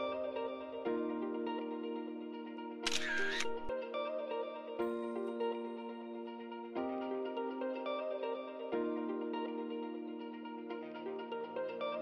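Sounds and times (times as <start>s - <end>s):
plucked-string music: 0.0s - 12.0s
camera shutter sound effect: 2.8s - 3.7s.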